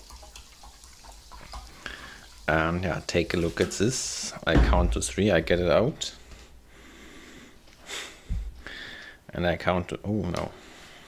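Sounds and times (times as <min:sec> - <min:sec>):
water pouring into a bowl: 0:00.0 - 0:04.2.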